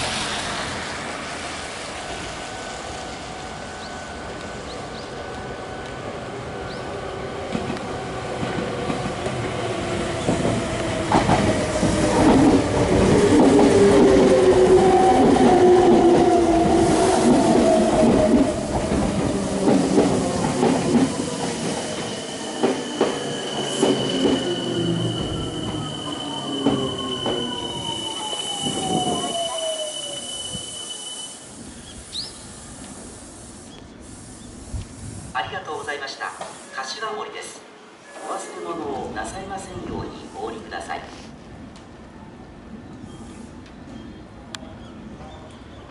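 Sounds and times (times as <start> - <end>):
electric train arriving: 0.0 - 45.9.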